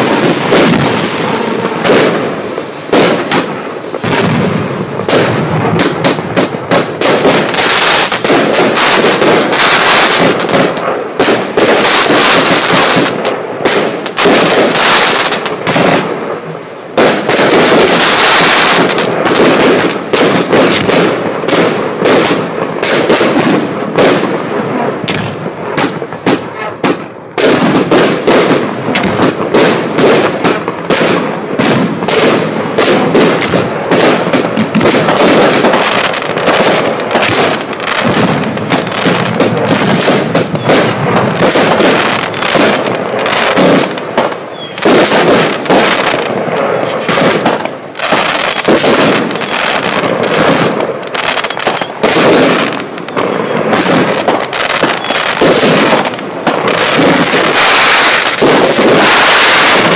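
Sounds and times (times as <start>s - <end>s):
cake firework shots and bursts: 0.0s - 59.9s.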